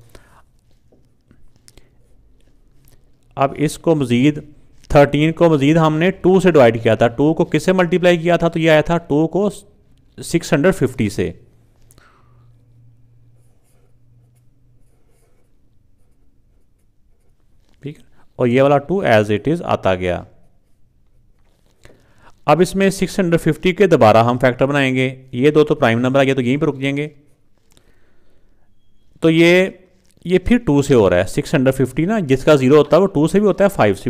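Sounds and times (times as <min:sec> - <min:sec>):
marker writing on paper: 0:00.6 - 0:02.9, 0:13.3 - 0:17.8, 0:20.4 - 0:21.8
faint low hum: 0:10.8 - 0:18.5.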